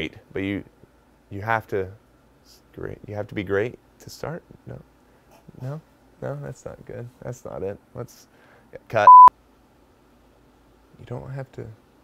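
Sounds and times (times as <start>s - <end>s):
electronic beep: 9.0s - 9.3s.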